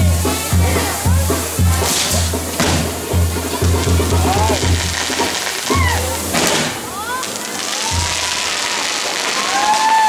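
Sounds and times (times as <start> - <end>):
music with steady low beat: 0.0 - 6.0
fireworks hissing and crackling: 0.0 - 10.0.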